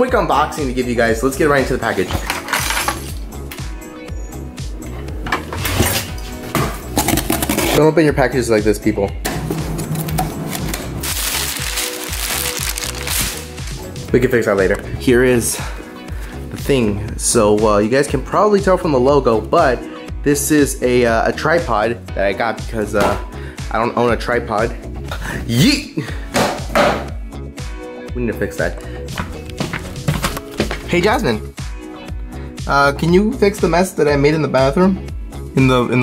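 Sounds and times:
background music: 0.0s - 36.0s
cardboard and tape ripping: 10.5s - 13.8s
cardboard box hitting tile floor: 29.6s - 30.9s.

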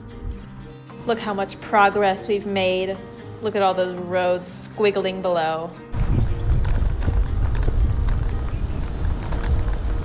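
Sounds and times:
wind buffeting microphone: 5.9s - 10.0s.

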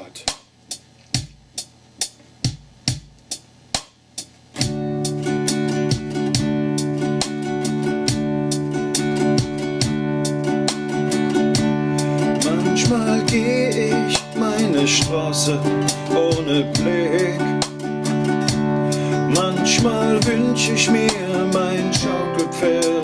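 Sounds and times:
drum-machine beat: 0.0s - 23.0s
nylon-string guitar strummed: 4.6s - 23.0s
man singing: 12.2s - 23.0s.

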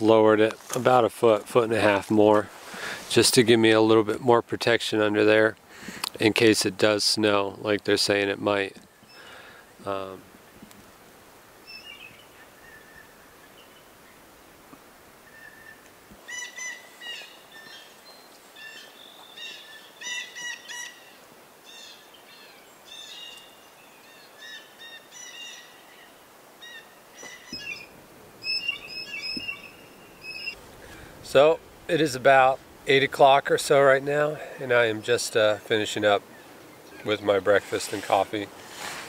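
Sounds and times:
faint outdoor hush: 0.0s - 39.0s
songbirds chirping: 0.0s - 39.0s.

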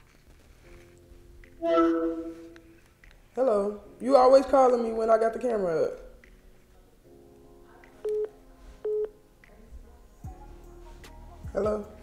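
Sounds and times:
short phone call beeps: 8.9s - 9.1s.

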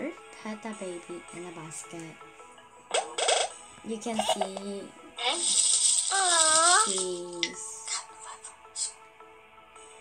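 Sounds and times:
high voice-like tone: 5.2s - 8.0s.

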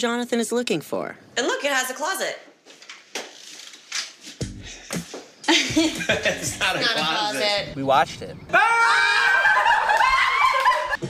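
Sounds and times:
people laughing loudly: 5.5s - 7.4s, 9.0s - 11.0s.

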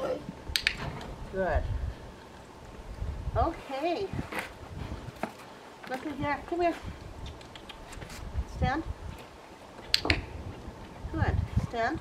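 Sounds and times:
dog-training clicker clicks: 9.9s - 10.2s.

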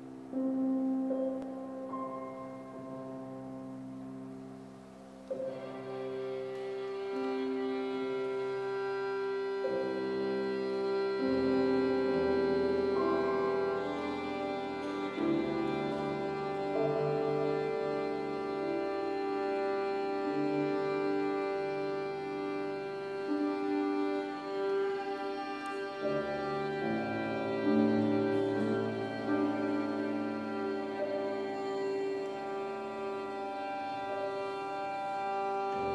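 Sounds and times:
piano: 0.0s - 35.9s
violin: 0.0s - 35.9s.

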